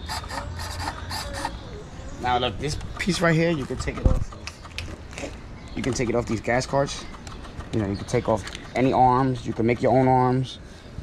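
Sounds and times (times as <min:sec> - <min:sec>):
servo rasping: 0:00.0 - 0:01.6.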